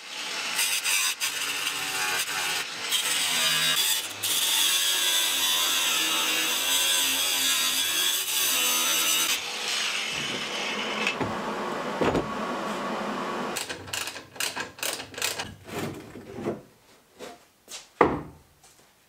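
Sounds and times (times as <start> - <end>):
angle grinder cutting metal: 0.0 - 11.8.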